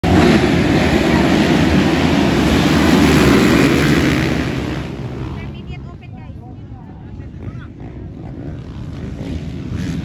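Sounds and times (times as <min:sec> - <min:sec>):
dirt bike engines running: 0:00.0 - 0:10.0.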